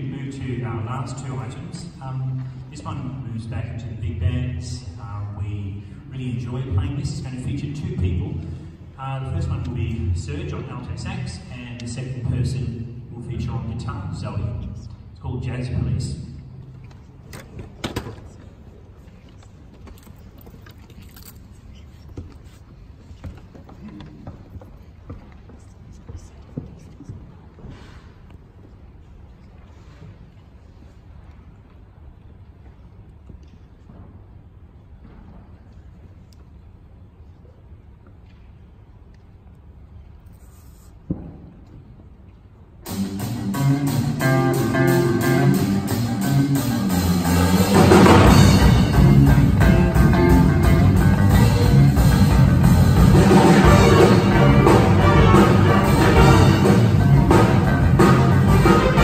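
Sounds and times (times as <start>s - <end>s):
small knocks and shuffles: 16.8s - 31.8s
big band playing: 42.8s - 59.0s
electric guitar groove: 43.0s - 59.0s.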